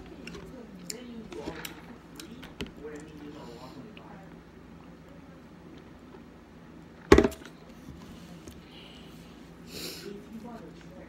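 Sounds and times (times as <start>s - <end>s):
plastic cup set down on table: 7.1s - 7.5s.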